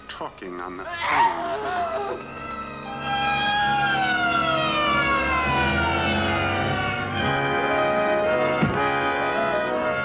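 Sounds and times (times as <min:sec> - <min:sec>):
police siren winding down: 0:01.6 - 0:10.0.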